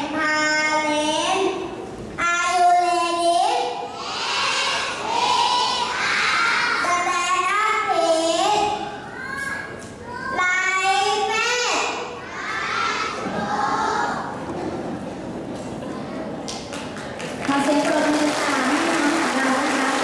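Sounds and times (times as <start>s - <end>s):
children singing in unison: 4.0s - 6.8s, 12.3s - 14.4s.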